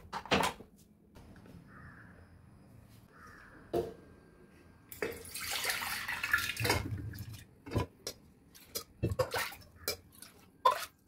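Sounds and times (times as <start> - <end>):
bird calling: 1.6 - 2.2, 3.1 - 3.7.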